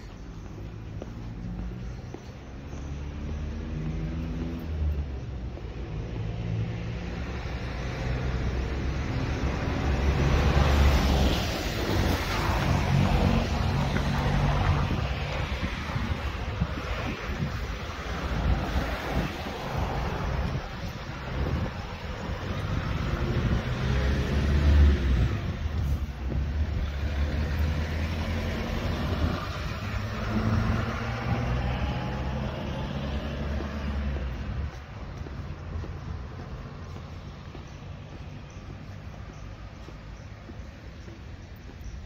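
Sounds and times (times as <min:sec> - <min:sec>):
hum of car traffic: 0:00.0 - 0:42.0
wind buffeting microphone: 0:09.7 - 0:42.0.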